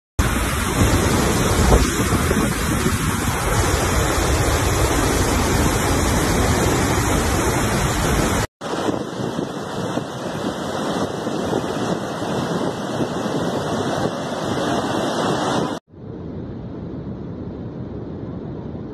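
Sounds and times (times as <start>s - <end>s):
heavy falling water rushing: 0.2s - 10.8s
wind noise on microphone: 0.2s - 18.9s.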